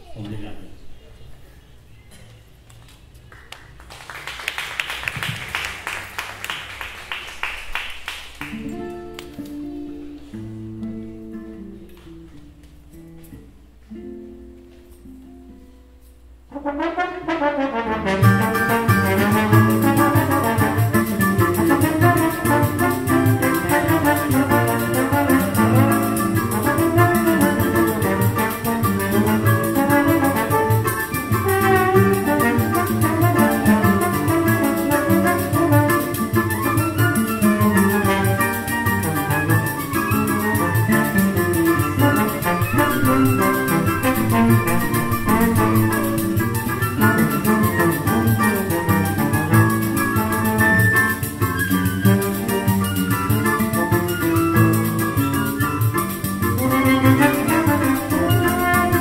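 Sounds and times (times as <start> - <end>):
trombone: 16.5 - 59.0
flute: 18.5 - 59.0
plucked strings: 18.5 - 59.0.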